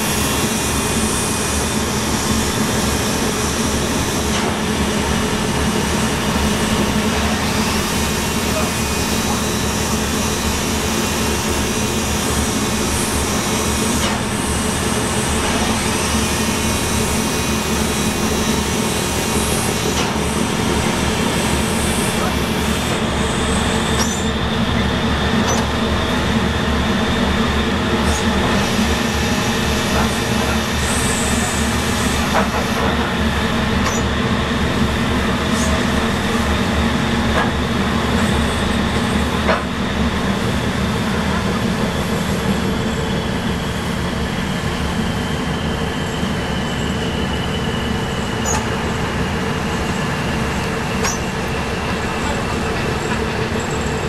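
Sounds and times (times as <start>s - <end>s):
ship machinery drone: 0.0s - 54.0s.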